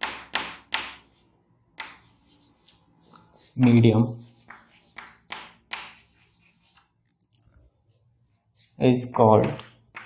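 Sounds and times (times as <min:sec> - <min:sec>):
chalk strokes on chalkboard: 0:00.0 - 0:06.9, 0:08.2 - 0:08.9.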